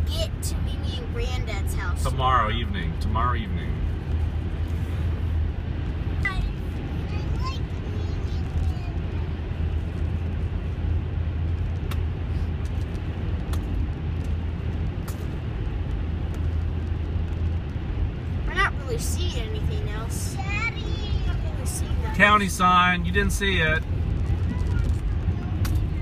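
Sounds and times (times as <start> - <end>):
car road noise drone: 0.0 - 26.0.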